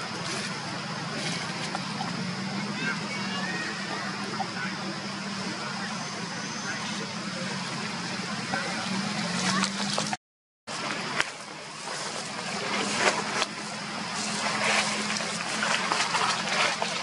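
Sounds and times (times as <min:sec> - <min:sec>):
faint voices: 0:00.0 - 0:17.0
low hum: 0:10.7 - 0:17.0.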